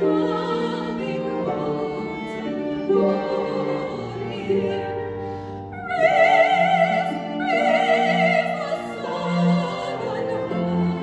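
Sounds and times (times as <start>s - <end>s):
cello: 0.0s - 11.0s
harp: 0.0s - 11.0s
violin: 0.0s - 11.0s.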